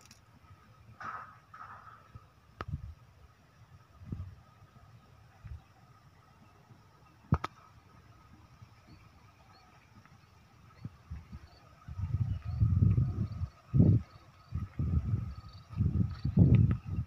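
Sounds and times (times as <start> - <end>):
wind buffeting microphone: 3.9 - 4.5, 8.2 - 17.0.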